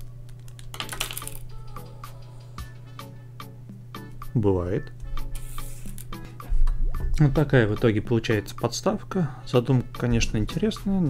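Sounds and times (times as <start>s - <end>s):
background music with steady beat: 0.0s - 11.0s
plastic parts clattering on table: 0.5s - 1.4s.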